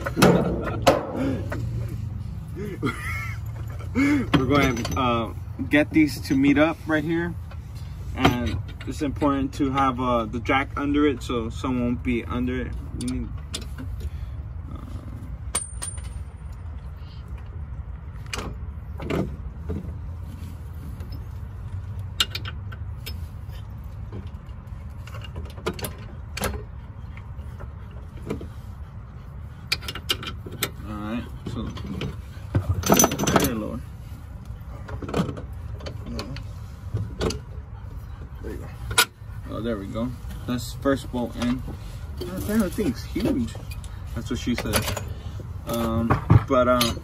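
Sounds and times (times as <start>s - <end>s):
metallic clicks and knocks: 22.0s - 23.2s, 31.4s - 33.8s.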